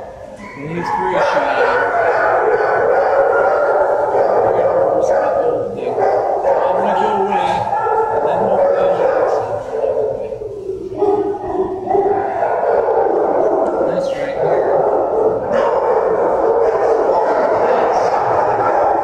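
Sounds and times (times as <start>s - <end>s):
dogs barking and howling: 0.0s - 19.0s.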